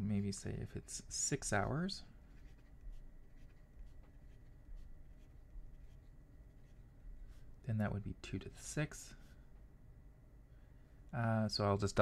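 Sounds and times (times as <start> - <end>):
pen scratching on paper: 2.3 - 6.8.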